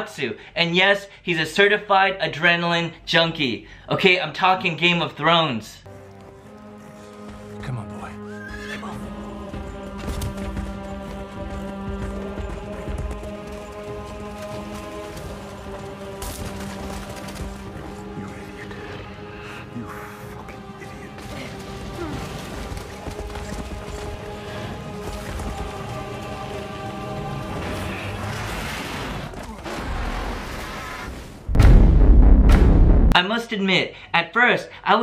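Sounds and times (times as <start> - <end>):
sustained music: 5.8 - 29.3
horse hoofbeats galloping: 5.9 - 18.6, 21.2 - 27.5
horse whinnying: 8.3 - 8.9.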